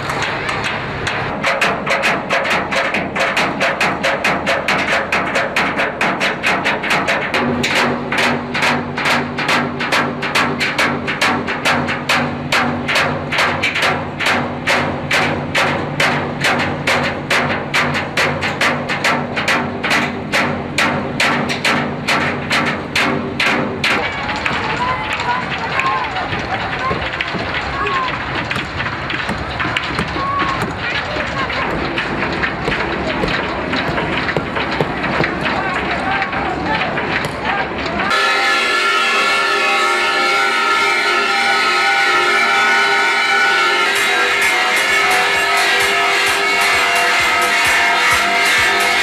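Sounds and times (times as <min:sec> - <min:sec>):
fast even knocking: 0:26.3 - 0:37.6.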